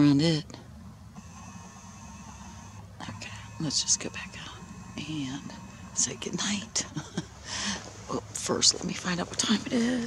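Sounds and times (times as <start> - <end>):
low hum: 0.0 - 10.0
camera zoom motor whirring: 1.1 - 6.0.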